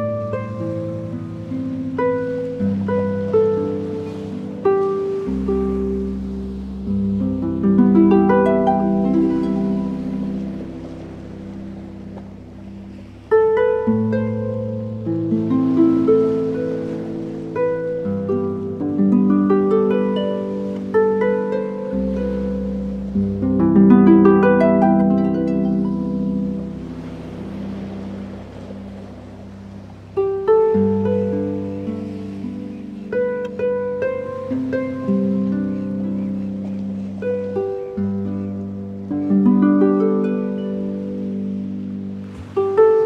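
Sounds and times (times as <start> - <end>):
harp notes ringing: 0.0 - 41.9
sea surf: 0.0 - 43.0.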